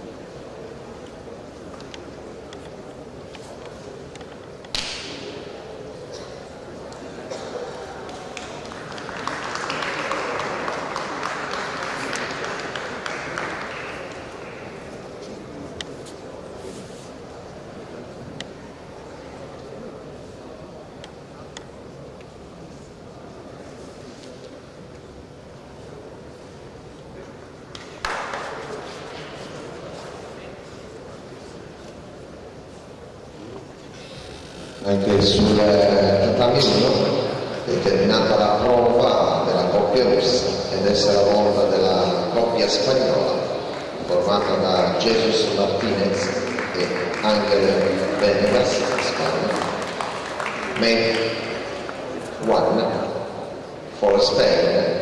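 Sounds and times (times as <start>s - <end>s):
murmur of hall background: 0.0s - 55.0s
sharp crack echoing in a hall: 1.0s - 16.4s, 27.2s - 32.0s, 33.5s - 55.0s.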